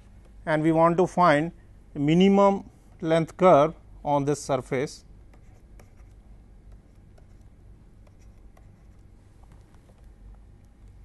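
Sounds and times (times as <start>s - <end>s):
low steady hum: 0.0s - 11.0s
stylus tapping on pen tablet: 6.7s - 10.2s.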